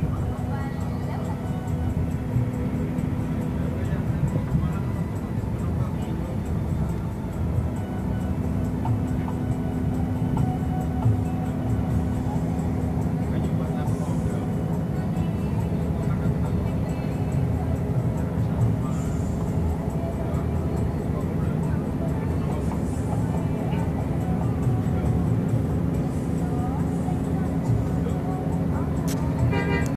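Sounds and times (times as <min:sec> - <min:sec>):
constant low hum: 0:00.0 - 0:29.9
engine and road rumble: 0:00.0 - 0:29.9.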